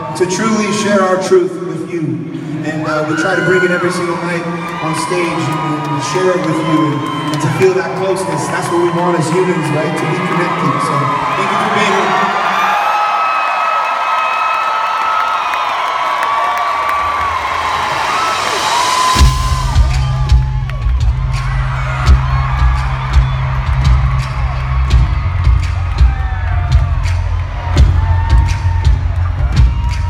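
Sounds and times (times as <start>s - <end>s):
crowd cheering and screaming: 2.6s - 30.0s.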